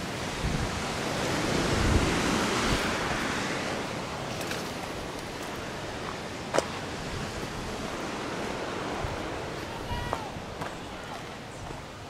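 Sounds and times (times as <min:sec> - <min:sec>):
distant ocean surf: 0:00.0 - 0:12.0
wind: 0:00.0 - 0:12.0.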